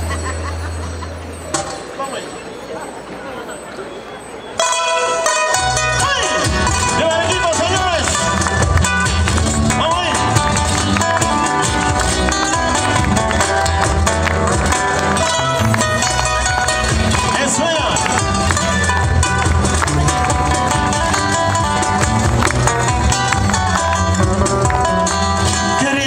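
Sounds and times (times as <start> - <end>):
acoustic guitars playing: 4.6 - 26.0
low bass line: 5.6 - 25.8.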